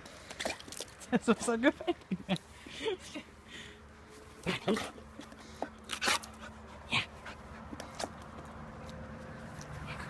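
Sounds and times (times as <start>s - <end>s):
person laughing: 1.6s - 3.4s, 4.4s - 5.0s.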